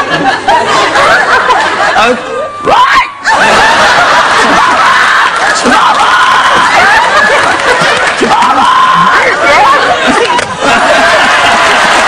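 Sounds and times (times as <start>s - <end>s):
studio audience laughing: 0.0s - 2.4s, 3.2s - 12.0s.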